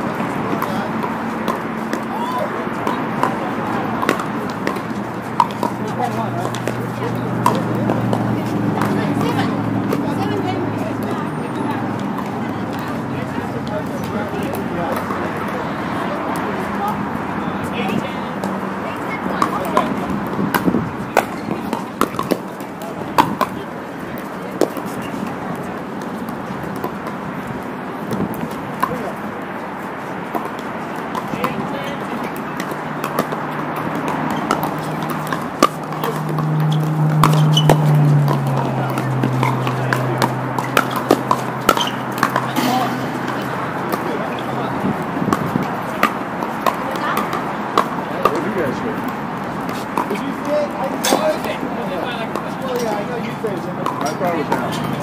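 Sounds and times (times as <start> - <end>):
chatter of players: 0.0 - 55.0
paddles striking plastic balls: 30.1 - 51.6.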